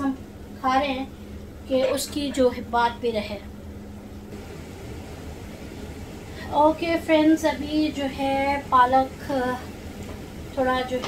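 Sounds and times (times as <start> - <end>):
pot cooking low rumble: 4.3 - 11.0.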